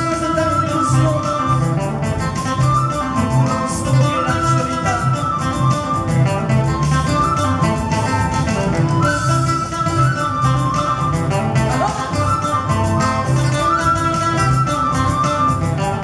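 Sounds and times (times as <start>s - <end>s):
acoustic and electric guitars: 0.0s - 16.0s
electric bass: 0.0s - 16.0s.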